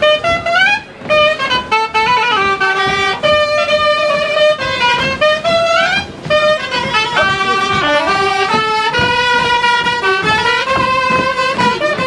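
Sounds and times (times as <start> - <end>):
folk dance tune on reed instruments: 0.0 - 12.0.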